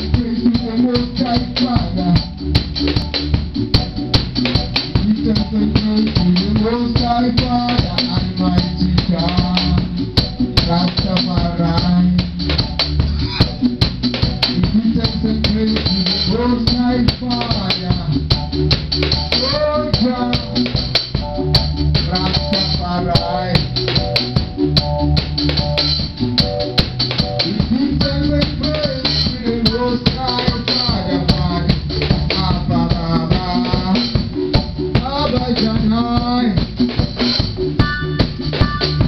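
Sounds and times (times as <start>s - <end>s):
cymbal and drum strikes: 0.0s - 39.0s
live band playing: 0.0s - 39.0s.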